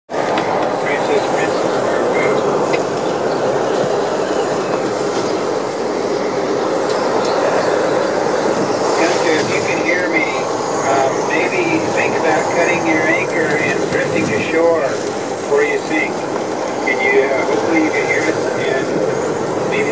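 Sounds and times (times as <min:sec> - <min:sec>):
wind rushing around boat: 0:00.1 - 0:19.9.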